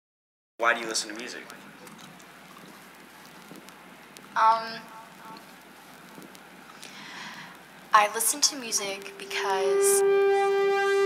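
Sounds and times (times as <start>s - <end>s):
faint steady hiss: 0.6s - 11.0s.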